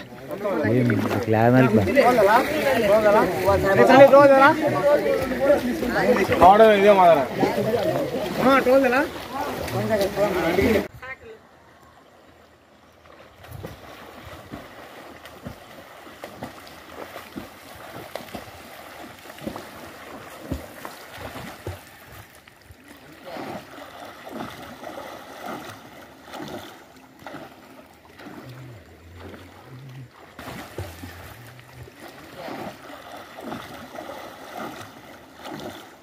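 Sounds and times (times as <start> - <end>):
running water: 0.0 - 36.0.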